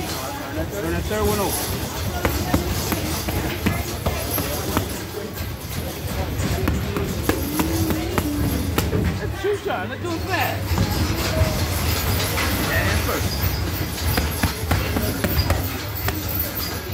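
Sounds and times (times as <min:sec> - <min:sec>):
boxing gloves slapping mitts: 0:02.1 - 0:05.2, 0:06.2 - 0:09.2, 0:13.6 - 0:16.8.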